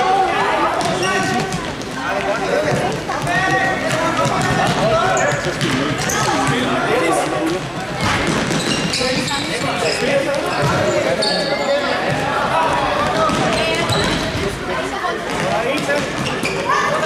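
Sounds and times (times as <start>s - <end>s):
shoes squeaking on floor: 0.8s - 1.8s, 4.4s - 12.2s, 13.1s - 14.6s, 15.4s - 17.0s.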